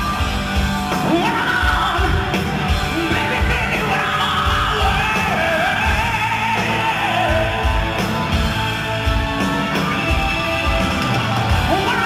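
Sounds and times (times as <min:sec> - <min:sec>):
hard rock band playing: 0:00.0 - 0:12.0
man singing high wailing vocals: 0:01.0 - 0:02.3, 0:02.9 - 0:07.9, 0:11.6 - 0:12.0.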